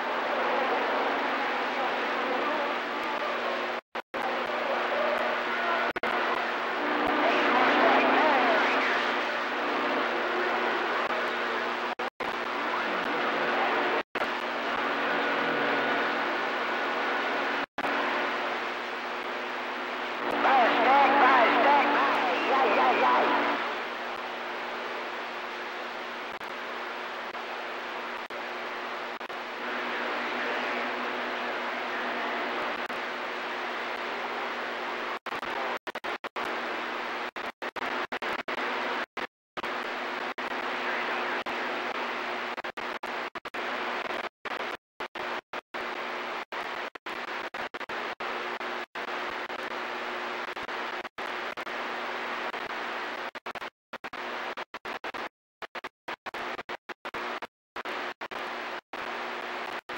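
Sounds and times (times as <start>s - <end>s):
garbled radio voices: 0.0s - 16.5s, 20.2s - 24.0s
radio static hiss: 0.0s - 59.9s.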